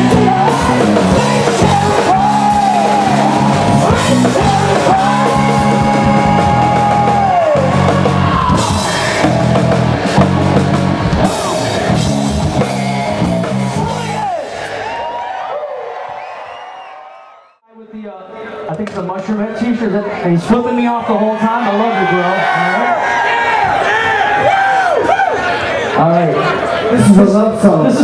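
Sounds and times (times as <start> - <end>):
man singing long high notes: 0.0 - 9.0
hard rock band playing: 0.0 - 15.0.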